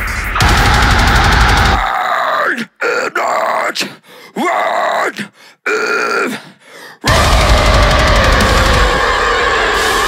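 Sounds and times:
harsh guttural vocals: 0:01.1 - 0:10.0
metal band playing: 0:07.1 - 0:10.0.

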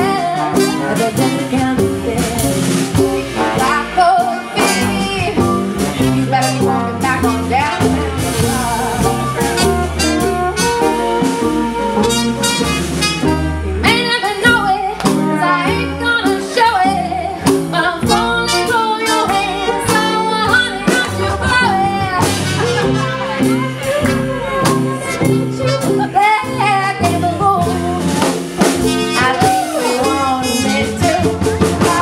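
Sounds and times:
drum beat: 0:00.0 - 0:04.0, 0:04.6 - 0:14.0, 0:17.4 - 0:25.6, 0:27.7 - 0:32.0
trumpet: 0:00.0 - 0:16.8, 0:17.7 - 0:32.0
fiddle: 0:00.0 - 0:28.1
mandolin: 0:00.0 - 0:32.0
upright bass: 0:00.0 - 0:32.0.

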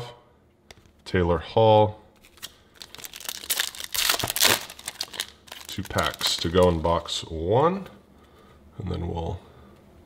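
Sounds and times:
foil wrapper crinkling and tearing: 0:02.2 - 0:07.1.

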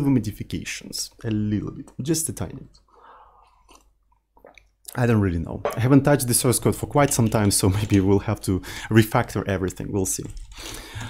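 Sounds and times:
mouth and swallowing clicks: 0:03.4 - 0:05.0.

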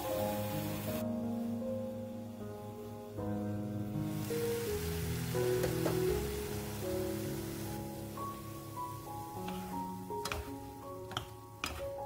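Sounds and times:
background music of held notes: 0:00.0 - 0:12.0
wooden spatula knocking frying pan: 0:05.6 - 0:06.3, 0:09.4 - 0:12.0.

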